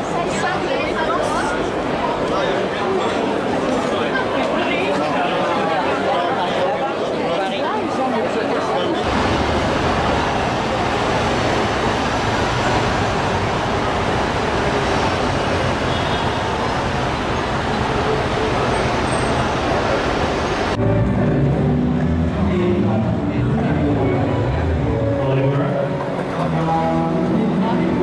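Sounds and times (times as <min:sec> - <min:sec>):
crowd chatter: 0:00.0 - 0:28.0
indoor market chatter: 0:00.0 - 0:28.0
traffic noise: 0:08.8 - 0:28.0.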